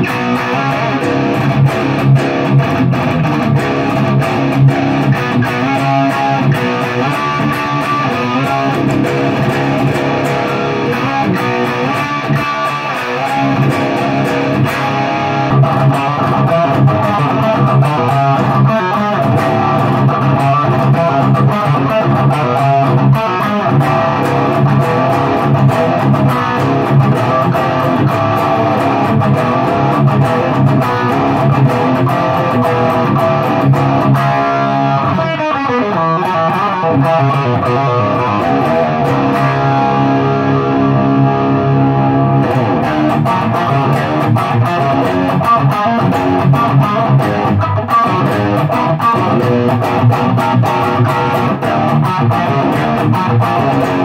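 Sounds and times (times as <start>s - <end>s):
distorted electric guitar: 0.0s - 54.0s.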